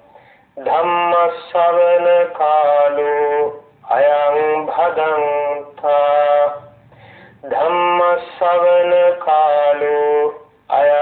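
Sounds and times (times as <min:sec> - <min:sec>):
man chanting held notes: 0:00.0 - 0:11.0.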